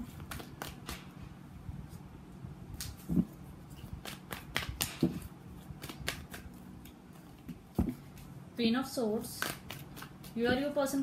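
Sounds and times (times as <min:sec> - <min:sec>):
cards being shuffled: 0:00.0 - 0:01.2, 0:02.8 - 0:08.4, 0:09.3 - 0:10.7
card edges flicking: 0:03.9 - 0:06.6.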